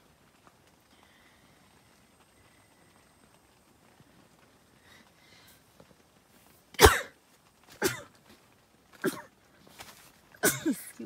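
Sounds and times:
person coughing: 6.8s - 7.1s, 7.8s - 8.1s, 9.0s - 9.3s, 10.4s - 10.9s.

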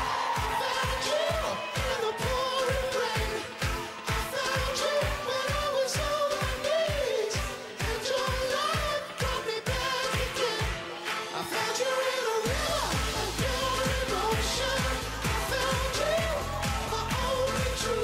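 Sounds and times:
kick drum: 0.0s - 10.8s, 12.5s - 18.0s
pop dance music: 0.0s - 18.0s.

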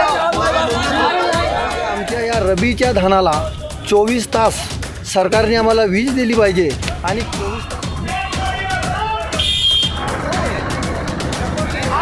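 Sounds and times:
music with regular beat: 0.0s - 12.0s
voices: 0.0s - 12.0s.

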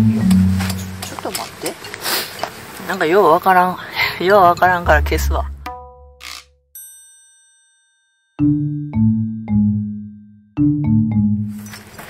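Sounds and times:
bright bell-like ding: 6.8s - 8.4s.

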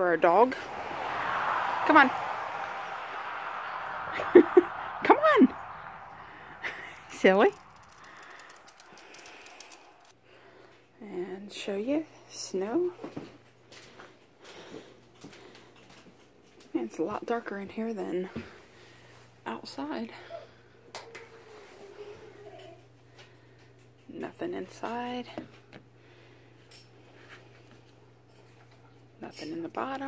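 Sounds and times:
low hum: 0.0s - 10.1s.

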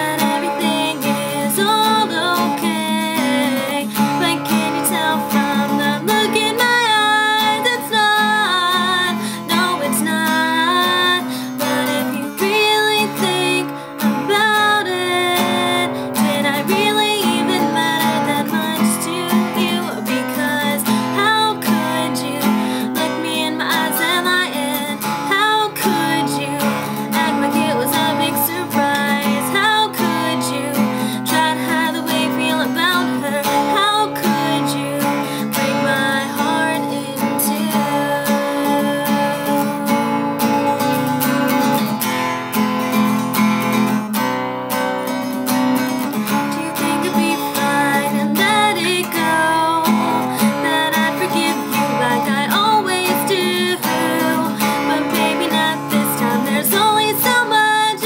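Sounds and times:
woman singing: 0.0s - 42.0s, 45.9s - 58.0s
acoustic guitar strumming: 0.0s - 58.0s.

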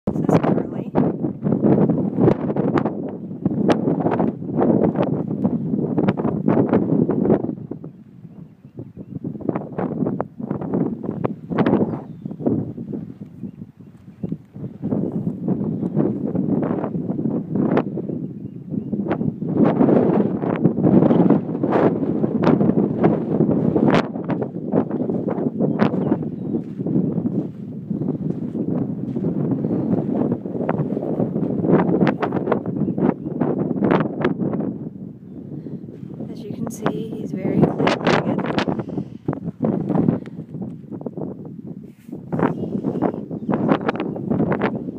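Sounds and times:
wind buffeting microphone: 0.1s - 44.9s.

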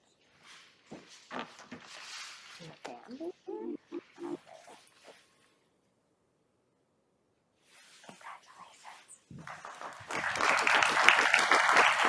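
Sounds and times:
person making pitched vocal sounds: 2.7s - 4.8s.

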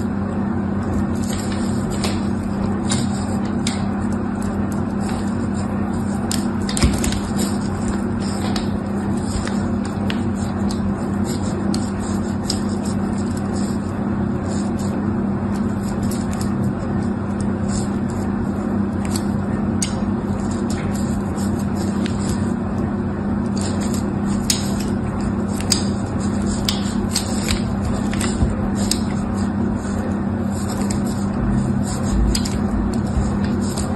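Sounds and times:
steady low hum: 0.0s - 33.9s.

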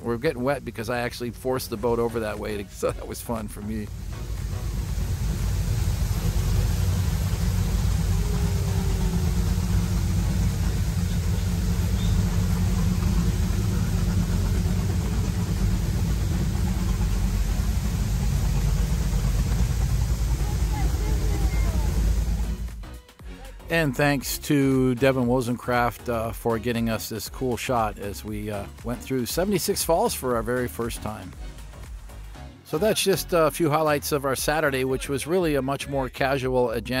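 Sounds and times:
boat engines running: 0.0s - 23.0s
waterfall rushing: 3.6s - 22.7s.

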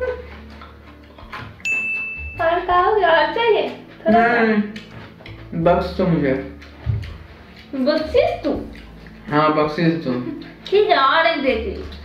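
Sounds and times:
bright electronic ding: 1.6s - 2.6s.

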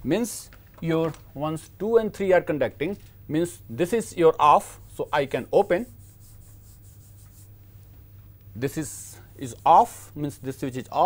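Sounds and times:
low electrical hum: 0.0s - 11.0s
hand wiping chalkboard: 4.9s - 7.5s, 9.4s - 10.1s.

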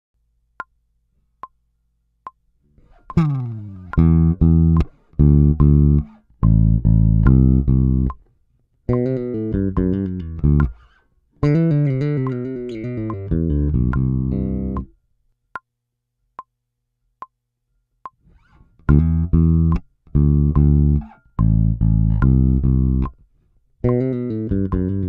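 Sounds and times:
electric bass guitar lick: 2.7s - 8.3s, 8.9s - 15.0s, 18.3s - 25.0s.

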